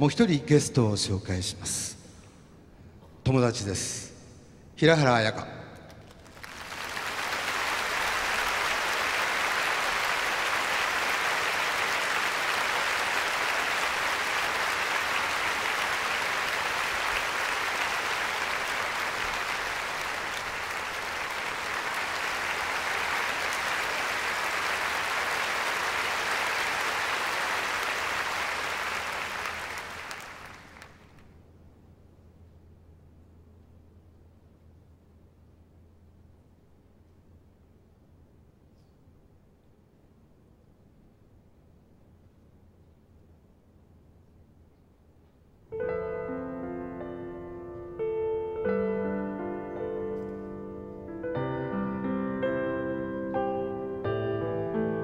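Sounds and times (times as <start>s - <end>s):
concert audience applauding: 5.8s - 31.4s.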